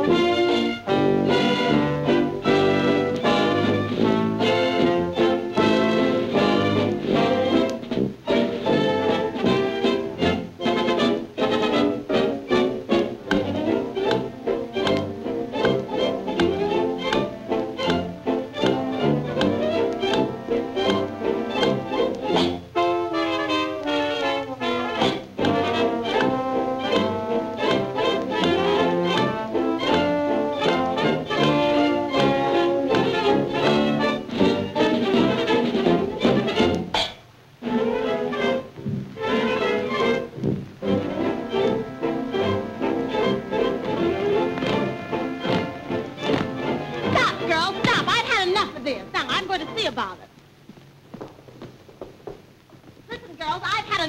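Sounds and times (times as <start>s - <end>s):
jazz dance orchestra playing: 0.0s - 36.9s, 37.6s - 50.2s.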